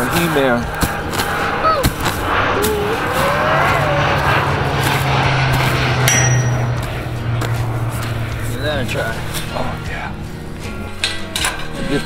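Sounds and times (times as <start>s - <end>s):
low steady hum: 0.8s - 11.7s.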